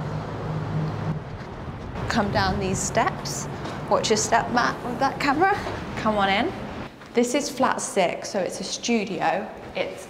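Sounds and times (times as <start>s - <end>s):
vehicle engine humming: 0.0s - 6.9s
street traffic: 0.0s - 7.0s.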